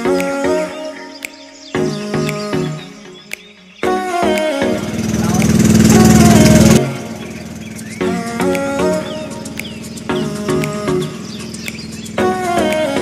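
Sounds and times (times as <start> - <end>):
background music: 0.0 - 13.0
boat engine running: 4.8 - 12.8.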